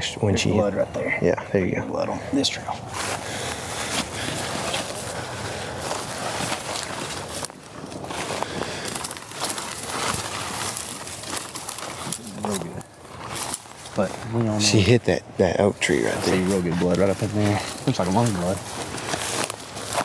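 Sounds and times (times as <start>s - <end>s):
footsteps through dry grass: 2.3s - 20.0s.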